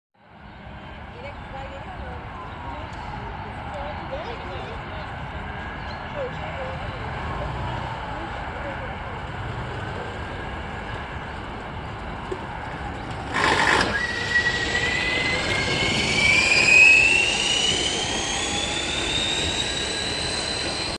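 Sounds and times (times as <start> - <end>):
steady background noise: 0.2 - 20.9
vehicle going by: 0.2 - 20.9
motor whine rising in pitch: 12.3 - 20.9
loud rush: 13.1 - 20.9.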